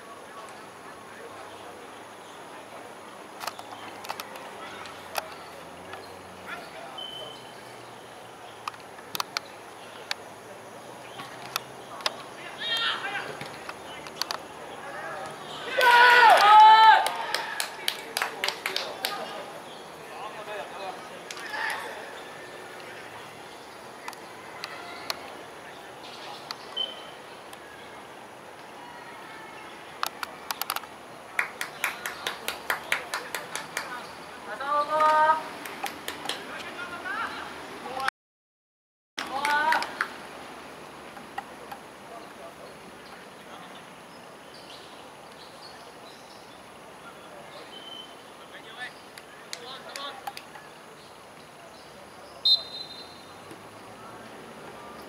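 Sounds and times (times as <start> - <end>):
outdoor background hiss: 0.0 - 38.1, 39.2 - 55.0
distant players calling: 3.6 - 38.0, 47.1 - 55.0
sharp rhythmic claps: 15.7 - 19.4, 31.3 - 34.0, 35.0 - 36.6
referee's whistle blast: 52.4 - 53.3.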